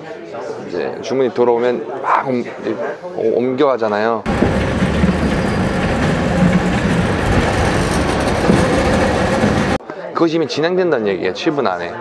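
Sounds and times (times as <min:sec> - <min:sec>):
conveyor rattle and hum: 0:04.3 - 0:09.8.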